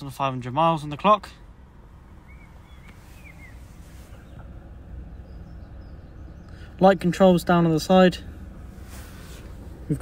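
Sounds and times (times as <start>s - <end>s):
car engine idling: 0.0s - 10.0s.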